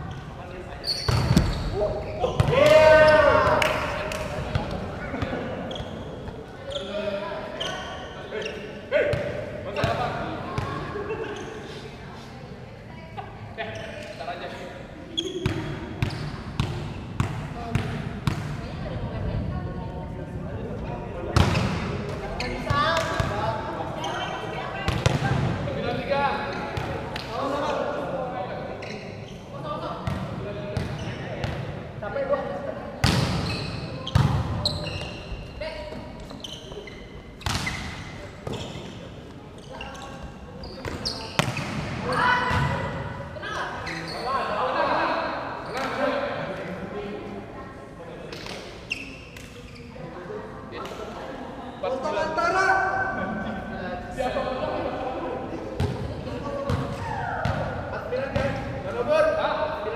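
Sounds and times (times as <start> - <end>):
volleyball slaps echoing: 1.1 - 1.7, 2.3 - 5.4, 24.8 - 25.6, 33.0 - 33.4, 37.4 - 38.6, 40.8 - 43.0.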